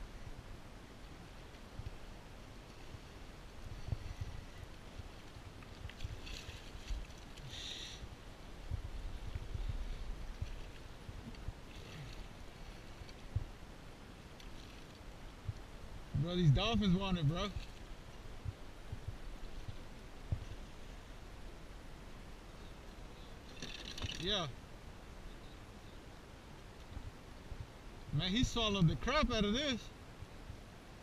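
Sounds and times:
steady low rumble: 0:00.0 - 0:14.3, 0:15.0 - 0:22.6
water moving around kayak: 0:00.0 - 0:25.5.

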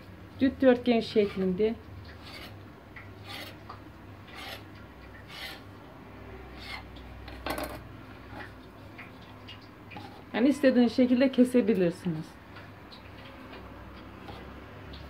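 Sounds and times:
knife scraping stone: 0:01.1 - 0:02.6, 0:03.2 - 0:03.6, 0:04.3 - 0:05.6, 0:06.6 - 0:06.9.

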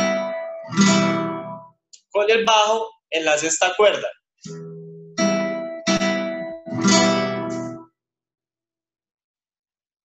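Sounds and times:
classical guitar waltz strumming: 0:00.0 - 0:01.8, 0:04.5 - 0:07.9.

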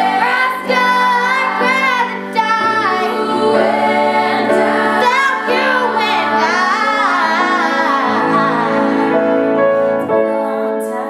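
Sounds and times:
sustained piano chords: 0:00.0 - 0:11.0
women singing in harmony: 0:00.0 - 0:11.0.

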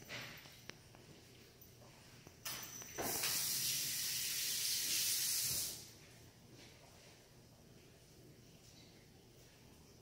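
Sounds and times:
steady hissing: 0:03.0 - 0:05.9.

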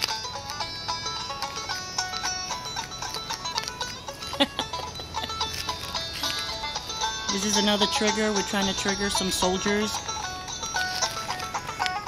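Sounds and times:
music from a phone speaker: 0:00.0 - 0:12.0.

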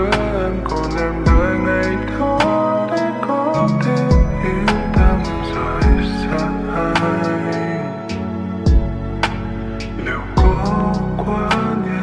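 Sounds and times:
slowed pop ballad chords: 0:00.0 - 0:12.0
deep drum hit: 0:05.0 - 0:06.1, 0:08.7 - 0:09.0, 0:10.4 - 0:10.7.

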